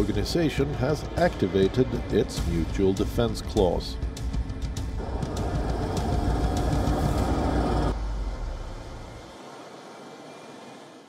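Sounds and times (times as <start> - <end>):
truck engine rumbling: 4.9 - 10.1.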